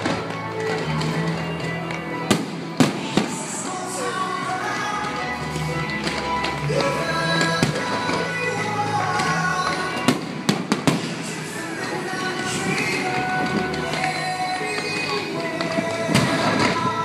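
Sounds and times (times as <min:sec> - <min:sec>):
fireworks bangs: 0:00.0 - 0:17.0
music soundtrack: 0:00.0 - 0:17.0.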